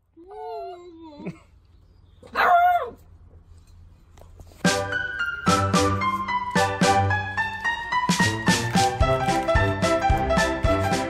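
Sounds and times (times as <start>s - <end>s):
puppy barking: 2.2s - 3.0s.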